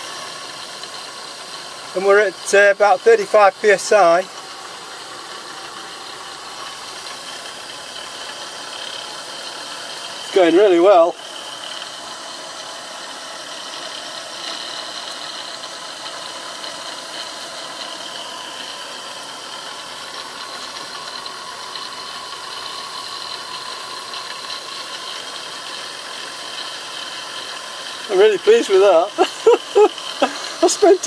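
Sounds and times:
steam hissing: 0.0 - 31.0
steam turbine whine: 0.0 - 31.0.

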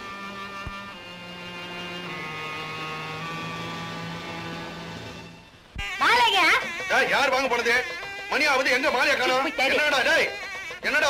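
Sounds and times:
sustained film score chord: 0.0 - 10.6.

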